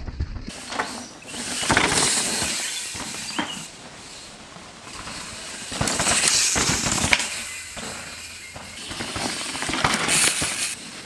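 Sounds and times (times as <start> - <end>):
bike clicks and rattles: 0.4 - 11.0
bike tyres hissing over dirt: 0.5 - 11.0.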